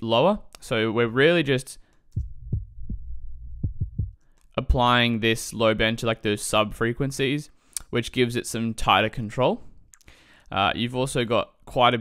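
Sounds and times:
low thumps: 0:02.1 - 0:04.2
deep sub-bass: 0:02.2 - 0:04.2.

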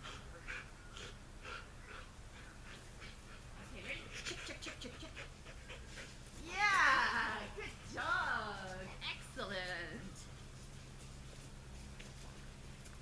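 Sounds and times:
dog panting: 0:00.0 - 0:06.4.

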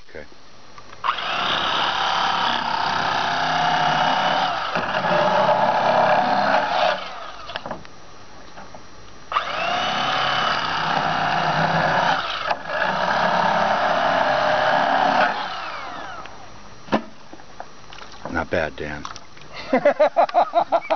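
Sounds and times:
electric knife motor buzzing: 0:01.0 - 0:07.7, 0:09.3 - 0:16.5.

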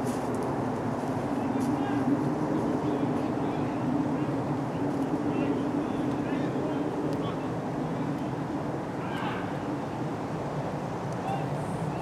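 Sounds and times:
distant voices: 0:00.8 - 0:12.0.

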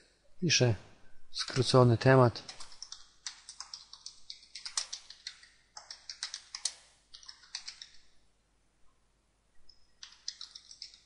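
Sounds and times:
computer keyboard typing: 0:02.4 - 0:08.0, 0:10.0 - 0:11.0.

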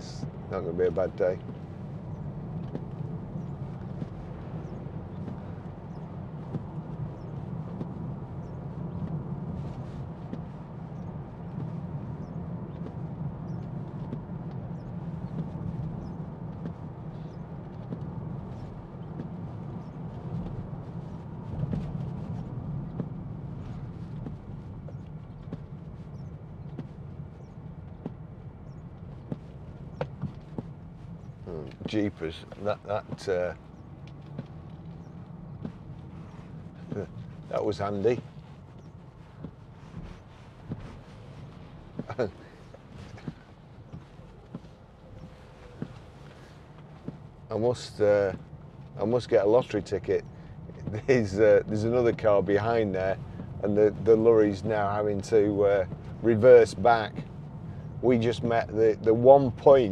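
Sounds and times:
car engine and tyre drone: 0:00.0 - 0:59.9.

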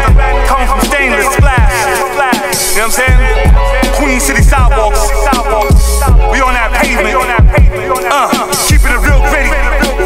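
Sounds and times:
heavy bass kicks: 0:00.0 - 0:01.8, 0:02.8 - 0:07.8
hip-hop beat: 0:00.0 - 0:10.0.

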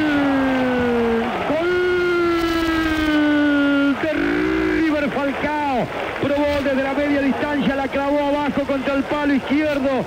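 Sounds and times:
commentator's drawn-out goal shout: 0:00.0 - 0:09.8.

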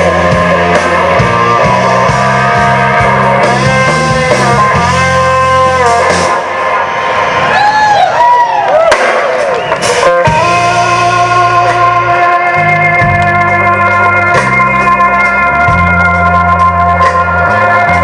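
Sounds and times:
electric guitar bending notes: 0:00.0 - 0:08.2, 0:09.0 - 0:18.0
blues rock band playing: 0:00.0 - 0:18.0.

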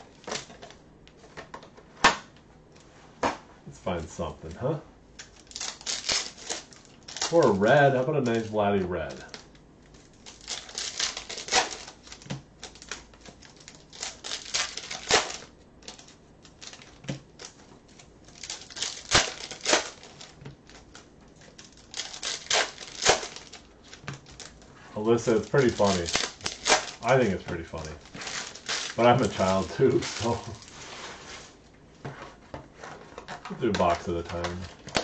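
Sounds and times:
cards crinkling: 0:00.0 - 0:01.8, 0:05.2 - 0:35.0.

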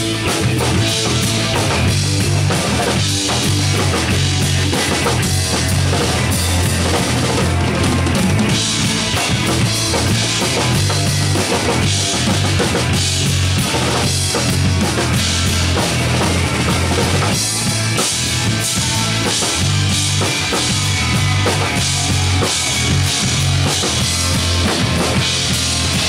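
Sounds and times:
drum kit playing: 0:00.0 - 0:26.0
electric guitar: 0:00.0 - 0:26.0
heavy repeating bass notes: 0:00.0 - 0:26.0.

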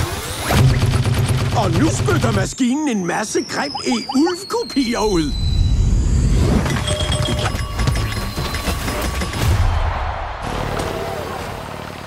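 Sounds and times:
music: 0:06.8 - 0:10.8.

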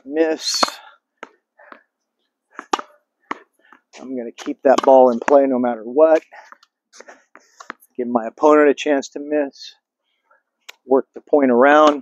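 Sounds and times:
racket striking tennis ball: 0:00.4 - 0:01.9, 0:02.5 - 0:05.5
ball hitting wall: 0:02.6 - 0:05.4
ball bouncing on hard court: 0:02.6 - 0:05.5.

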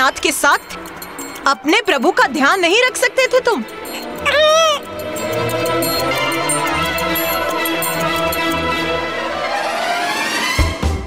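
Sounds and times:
background music: 0:00.0 - 0:11.0
cartoon mouse cry: 0:03.8 - 0:05.0.

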